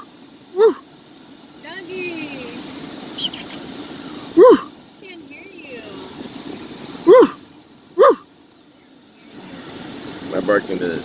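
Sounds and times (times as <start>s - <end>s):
low steady hum: 0.0s - 11.0s
dog barking: 0.6s - 0.8s, 4.4s - 4.7s, 7.0s - 7.4s, 8.0s - 8.3s.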